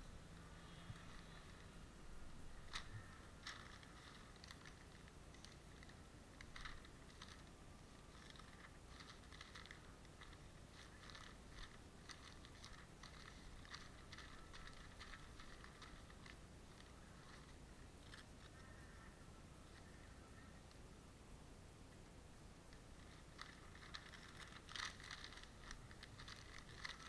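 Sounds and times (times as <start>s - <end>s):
newspaper crinkling and rustling: 0.6s - 18.9s, 22.9s - 27.0s.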